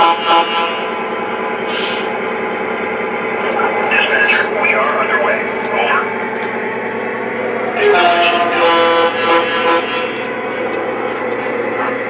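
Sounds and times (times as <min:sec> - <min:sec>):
model locomotive diesel engine sound: 0:00.0 - 0:12.0.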